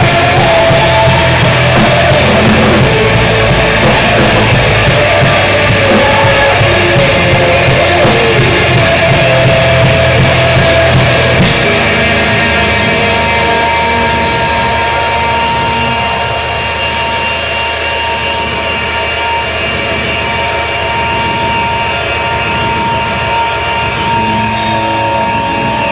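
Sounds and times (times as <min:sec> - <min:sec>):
crashing cymbals: 0:00.0 - 0:25.9
high steady tone: 0:00.0 - 0:25.9
live rock band playing: 0:00.0 - 0:25.9.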